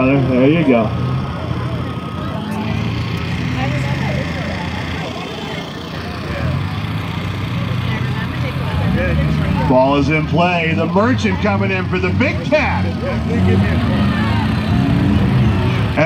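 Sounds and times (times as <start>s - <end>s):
car engines low hum: 0.0s - 16.0s
voices chattering: 0.0s - 16.0s.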